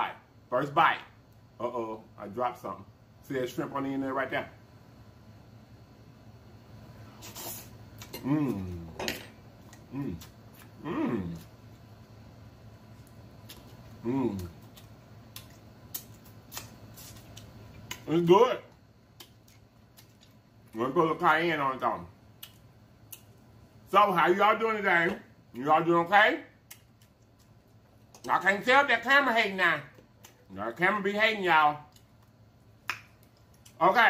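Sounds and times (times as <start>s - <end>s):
person chewing food: 12.9s - 18.1s, 19.2s - 20.8s
wet mouth clicks and smacks: 22.4s - 23.3s.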